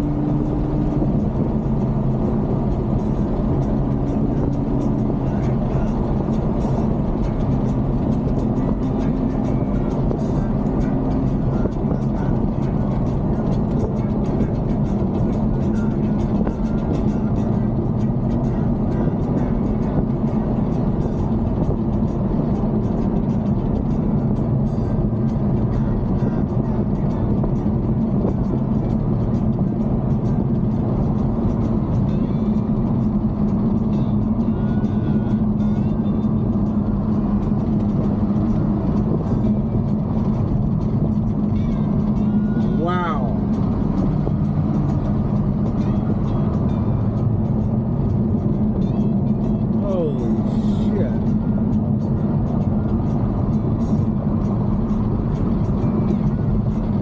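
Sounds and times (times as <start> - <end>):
car engine drone: 0.0 - 57.0
road and tyre rumble: 0.0 - 57.0.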